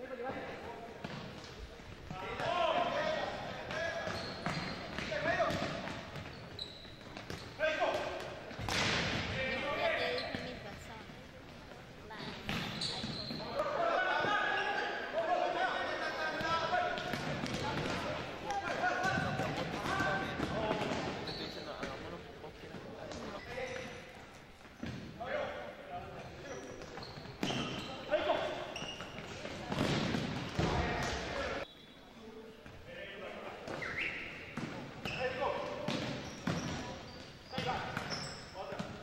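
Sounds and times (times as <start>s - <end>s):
sneaker squeaks: 3.4s - 11.1s, 12.1s - 14.3s, 19.0s - 22.2s, 23.0s - 25.1s, 26.1s - 32.8s, 33.6s - 39.0s.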